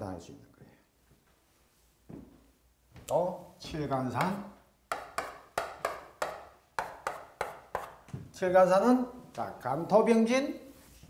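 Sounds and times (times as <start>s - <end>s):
chalk tapping on chalkboard: 4.2s - 8.1s.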